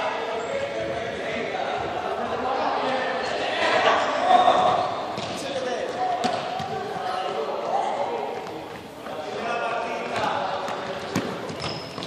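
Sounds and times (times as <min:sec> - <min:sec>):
voices echoing in hall: 0:00.0 - 0:12.0
running feet on hall floor: 0:08.2 - 0:12.0.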